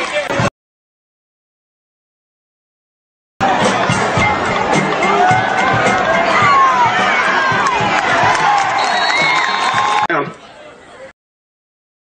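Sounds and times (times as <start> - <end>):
roar of crowd noise: 3.4 - 8.8
crowd cheering and yelling: 3.4 - 11.1.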